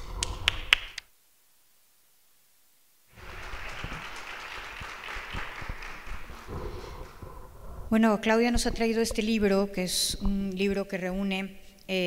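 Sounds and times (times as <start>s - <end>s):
audience applauding: 3.2s - 7.4s.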